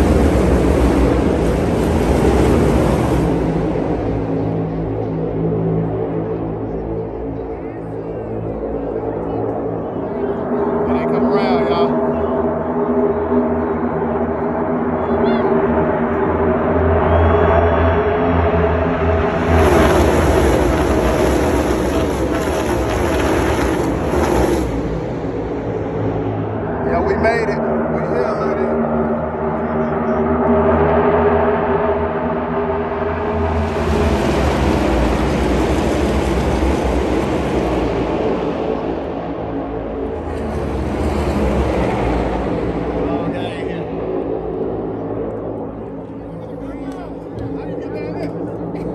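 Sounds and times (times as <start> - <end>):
race car engines passing: 0.0 - 48.9.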